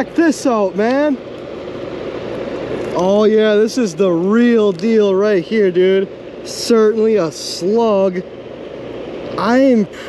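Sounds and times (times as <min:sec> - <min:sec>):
faint hum: 0:00.0 - 0:10.0
outdoor background noise: 0:00.0 - 0:10.0.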